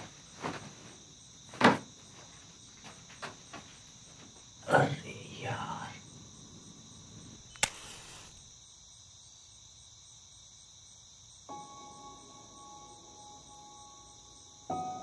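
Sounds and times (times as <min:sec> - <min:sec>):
crickets trilling: 0:00.0 - 0:15.0
sharp click: 0:07.4 - 0:08.4.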